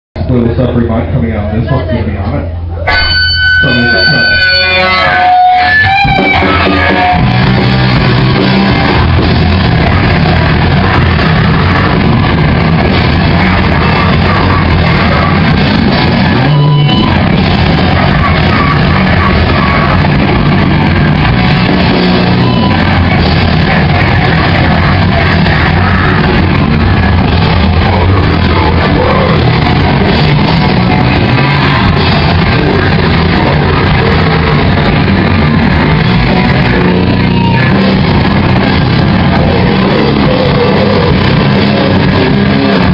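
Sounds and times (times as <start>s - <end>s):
drums: 0.2s - 42.9s
electric guitar: 2.7s - 42.9s
vocals: 3.6s - 42.9s.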